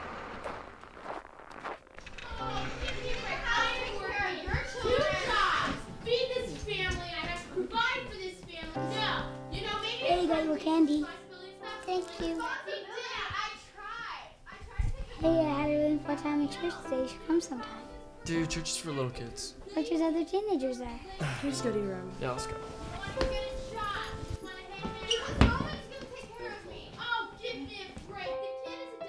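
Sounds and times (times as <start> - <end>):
children's voices playing: 2.0 - 18.1, 23.0 - 29.0.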